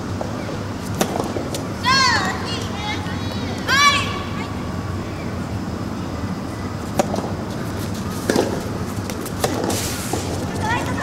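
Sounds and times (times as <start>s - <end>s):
tennis rackets hitting ball: 0.2s - 2.3s, 6.9s - 11.0s.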